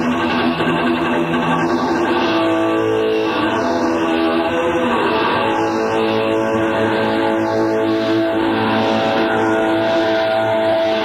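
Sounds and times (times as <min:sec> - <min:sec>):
electric guitar sustained notes: 0:00.0 - 0:11.0.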